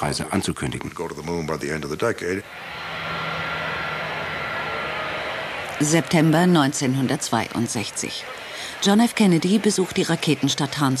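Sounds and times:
jet engines running: 2.4s - 11.0s.

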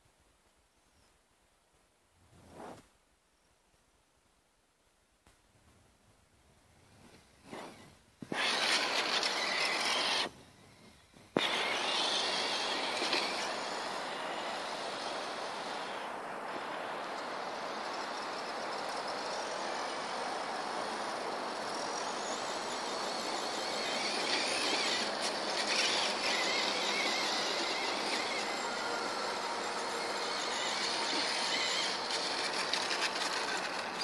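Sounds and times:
electric toy truck motor whine: 7.5s - 34.0s.

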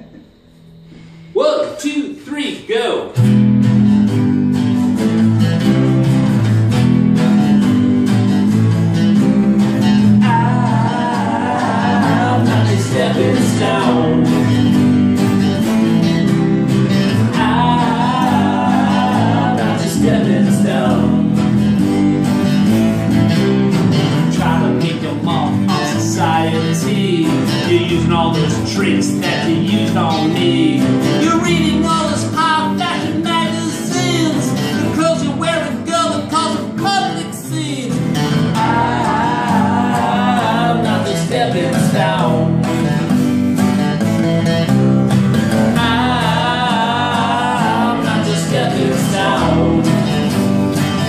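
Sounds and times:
strummed acoustic guitars: 0.0s - 51.0s
electric bass: 3.1s - 51.0s.

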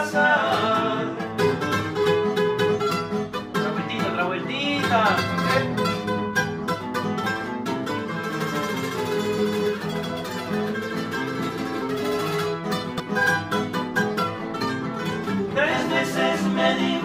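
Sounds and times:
acoustic guitars playing: 0.0s - 17.0s.

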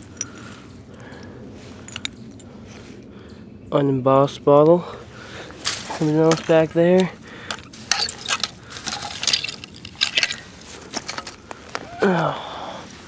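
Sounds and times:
glass clinking: 7.5s - 10.4s.

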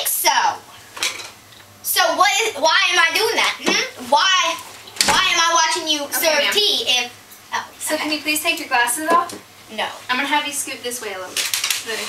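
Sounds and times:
child talking: 0.0s - 0.6s, 1.8s - 12.0s.

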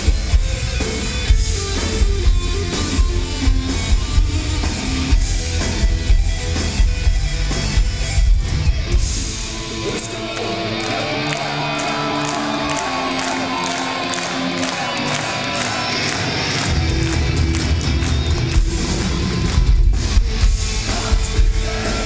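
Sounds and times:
heavy bass and drums: 0.0s - 10.8s, 15.9s - 22.0s.

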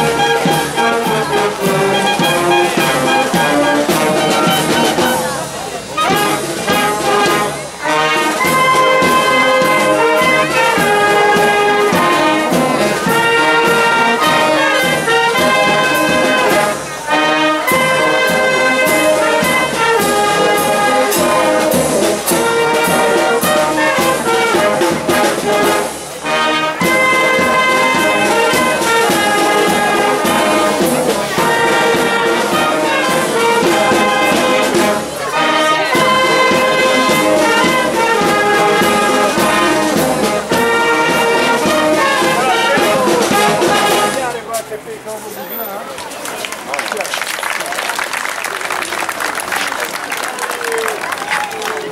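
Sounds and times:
marching brass band playing: 0.0s - 44.9s.

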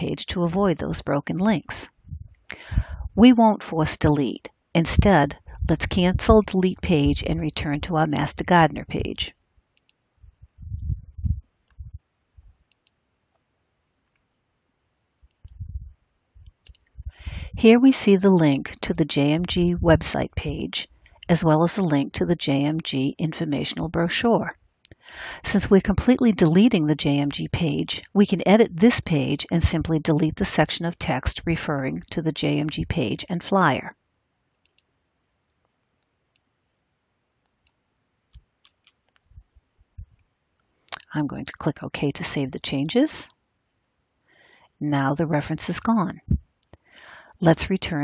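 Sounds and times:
low soft thumps: 2.0s - 3.2s, 5.0s - 7.4s, 10.2s - 12.5s, 15.4s - 17.6s
computer mouse clicks: 9.8s - 10.0s, 12.7s - 13.0s, 34.6s - 36.5s, 37.4s - 39.5s.

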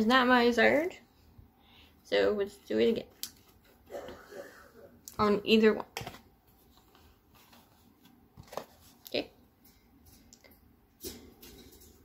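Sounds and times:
faint handling noise: 5.9s - 12.0s.

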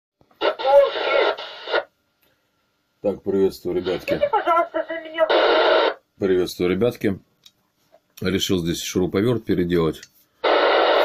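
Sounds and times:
voice over radio: 0.4s - 1.5s.

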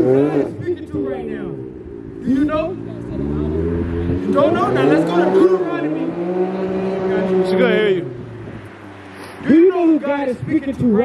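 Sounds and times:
car passing: 0.0s - 11.0s
man's voice: 4.2s - 8.2s, 9.4s - 11.0s.

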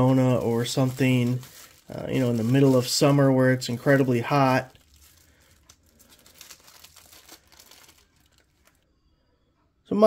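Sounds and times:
plastic wrapping crinkling: 0.0s - 8.8s.

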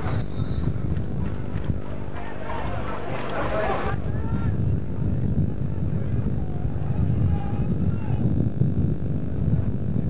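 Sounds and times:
faint distant voices calling: 0.0s - 8.4s
low fluctuating rumble: 0.0s - 10.0s.

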